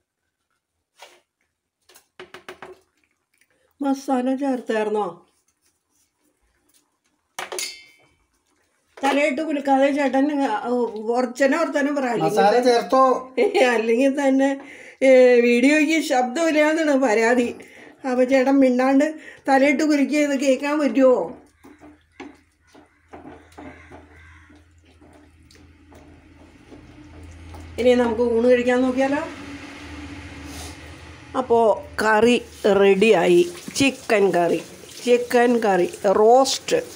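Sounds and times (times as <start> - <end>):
steel cookware clinking: 7.4 - 8.1
person speaking: 11.9 - 13.9, 31.4 - 36.9
wooden spatula scraping pan: 21.4 - 27.8
low steady hum: 24.6 - 34.8.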